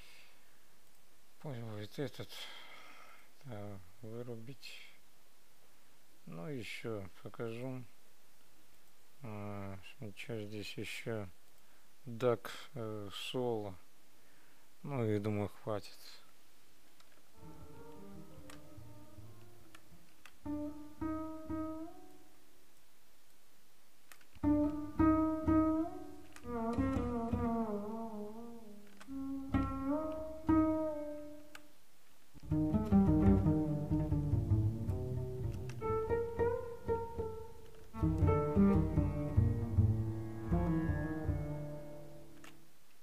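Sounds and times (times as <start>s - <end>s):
deep sliding bass phrases: 38.0s - 42.2s.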